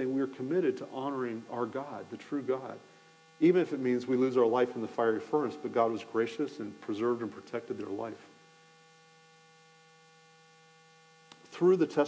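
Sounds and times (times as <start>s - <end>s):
speech: 0.0s - 2.8s, 3.4s - 8.3s, 11.4s - 12.0s
faint electrical hum: 0.0s - 12.0s.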